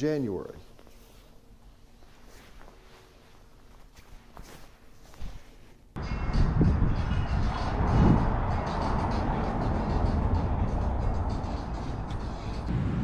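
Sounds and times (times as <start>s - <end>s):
music playing: 6.0s - 13.0s
traffic rumble: 6.0s - 13.0s.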